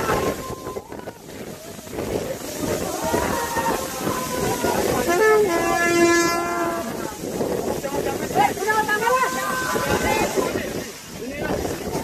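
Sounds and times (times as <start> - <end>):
horn sounding a long note: 5.0 - 7.1.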